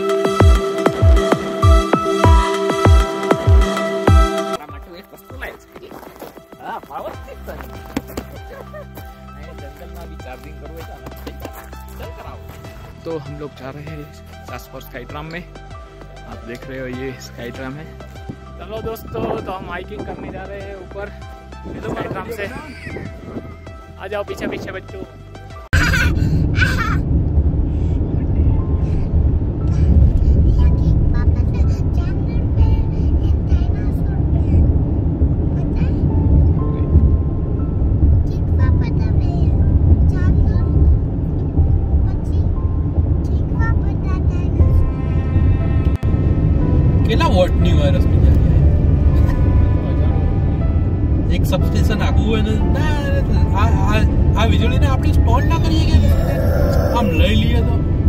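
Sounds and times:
background music: 0.0s - 58.0s
car road and engine rumble: 5.5s - 58.0s
person talking or singing: 51.9s - 57.8s.

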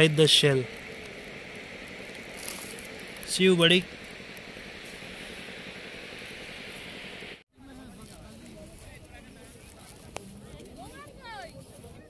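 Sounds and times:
steady beach hiss: 0.0s - 12.0s.

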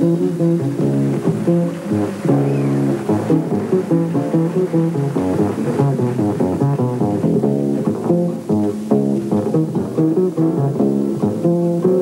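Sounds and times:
plucked jazz bass notes: 0.0s - 12.0s
small jazz group playing: 0.0s - 12.0s.

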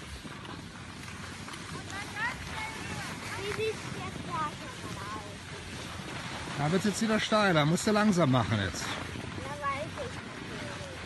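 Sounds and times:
skis sliding over packed snow: 0.0s - 11.0s
wind buffeting microphone: 0.0s - 11.0s.

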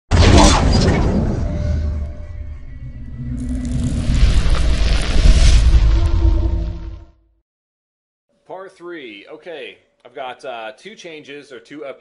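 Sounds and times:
low rumble: 0.5s - 7.2s
rising noisy swell: 2.0s - 7.1s.

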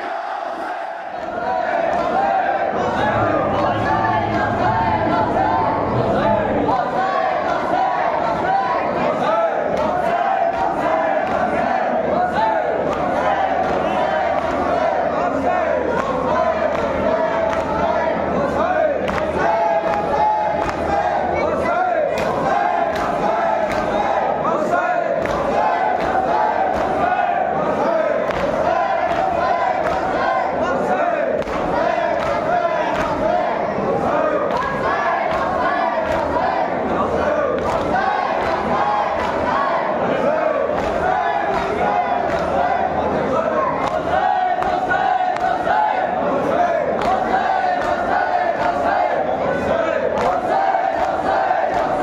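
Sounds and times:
men chanting together: 0.0s - 52.0s.

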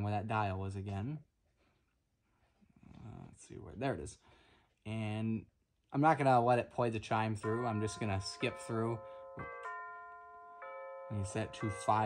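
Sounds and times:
electronic clock chime: 7.4s - 12.0s.

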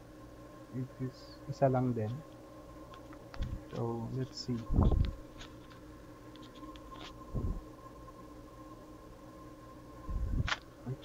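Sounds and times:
faint electrical whine: 0.0s - 11.0s.

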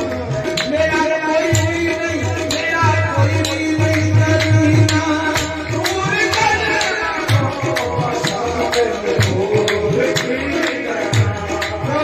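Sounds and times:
hand-clapping: 0.0s - 12.0s
sustained vocal melody: 0.0s - 12.0s
tabla: 0.0s - 12.0s.

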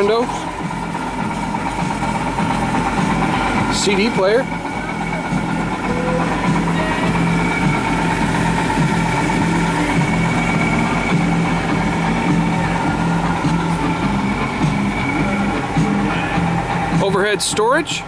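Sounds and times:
bus engine idling: 0.0s - 18.0s.

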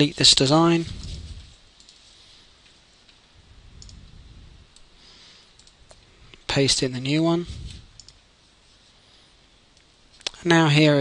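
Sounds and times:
low background rumble: 3.3s - 5.1s
computer mouse clicks: 3.8s - 6.4s, 7.9s - 8.2s.

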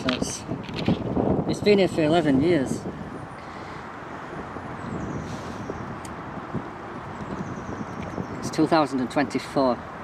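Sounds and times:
outdoor background rumble: 0.0s - 10.0s
wind on microphone: 0.0s - 10.0s.

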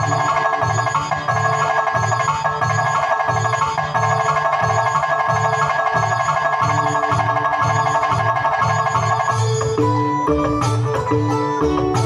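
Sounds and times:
keyboard rapid mallet-like notes: 0.0s - 12.0s
lower melody line: 0.0s - 12.0s
steady drum beat: 3.4s - 12.0s.

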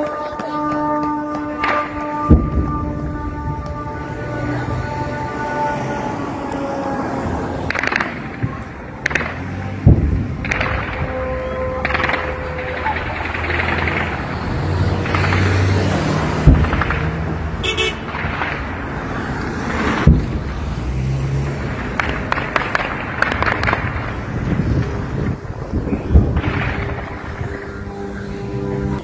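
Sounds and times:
people's voices: 0.0s - 17.9s
car horns: 0.0s - 18.7s, 25.8s - 29.0s
sharp bangs: 0.0s - 29.0s
traffic: 0.0s - 29.0s.

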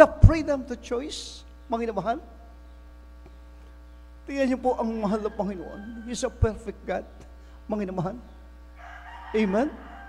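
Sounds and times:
man speaking into microphone: 0.0s - 2.4s, 4.2s - 8.3s, 9.3s - 9.8s
low electrical mains hum: 0.0s - 10.0s.

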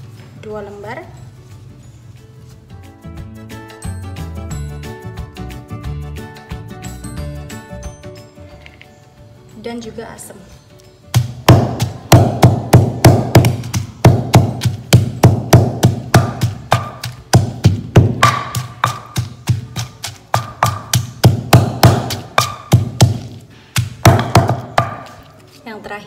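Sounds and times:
stone pestle pounding in mortar: 11.1s - 25.3s.

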